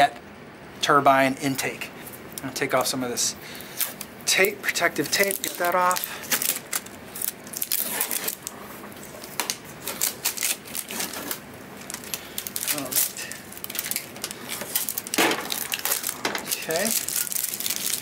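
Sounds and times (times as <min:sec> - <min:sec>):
tape peeling off plastic: 0:04.9 - 0:18.0.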